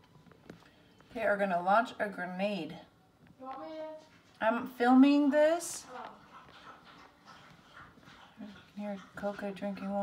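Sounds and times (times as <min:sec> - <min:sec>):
dog lapping water: 0:05.1 - 0:10.0.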